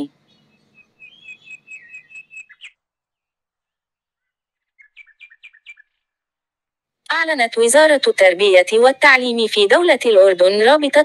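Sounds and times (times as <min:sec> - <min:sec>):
bird chirping: 0:00.0 - 0:06.3.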